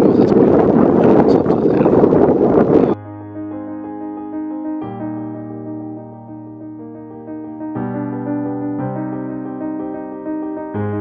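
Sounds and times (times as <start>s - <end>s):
wind buffeting microphone: 0.0s - 3.0s.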